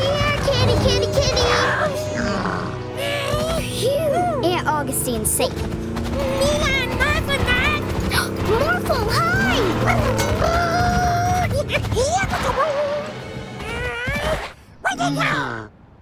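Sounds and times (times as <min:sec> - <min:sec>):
cartoon background music: 0:00.0 - 0:05.6, 0:06.2 - 0:15.5.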